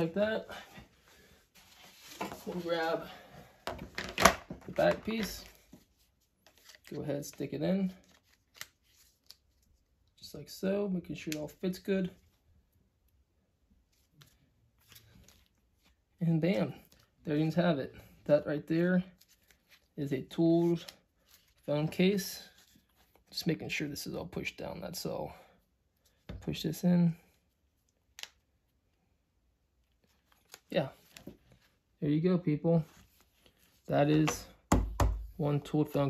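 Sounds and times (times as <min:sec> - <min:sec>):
soft rustle: 0:00.5 - 0:03.3.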